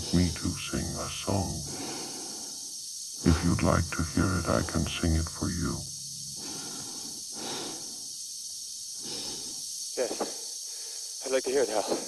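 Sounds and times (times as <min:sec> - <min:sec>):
steady hiss: 0:00.0 - 0:12.0
slow breathing in a helmet: 0:01.7 - 0:02.7, 0:06.4 - 0:08.1, 0:09.0 - 0:11.2.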